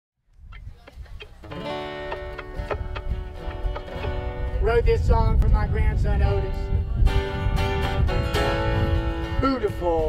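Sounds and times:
acoustic guitar picking and chords: 0:00.7 - 0:10.0.

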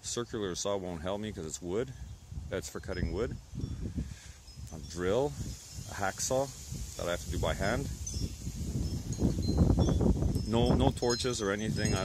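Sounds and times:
wind buffeting microphone: 0:01.4 - 0:12.0
faint high tinkling tones: 0:01.7 - 0:12.0.

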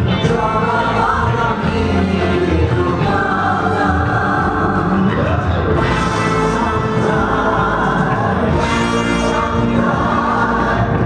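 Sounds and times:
electric guitar: 0:00.0 - 0:11.0
live band music: 0:00.0 - 0:11.0
several voices singing: 0:00.0 - 0:11.0.

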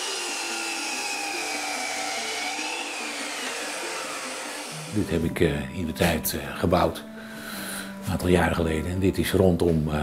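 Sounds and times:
mitre saw cutting wood: 0:00.0 - 0:05.2.

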